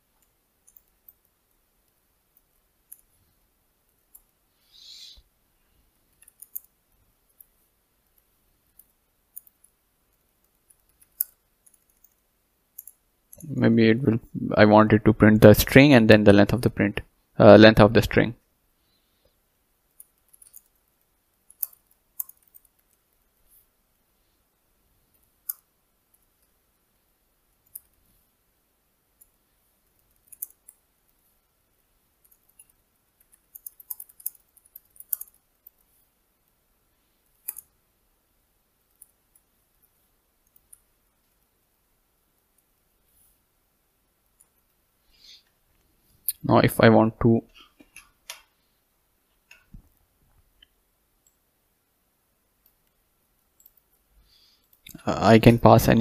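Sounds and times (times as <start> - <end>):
computer keyboard typing: 20.0 - 20.8, 21.5 - 23.0, 30.0 - 30.8, 32.2 - 35.8.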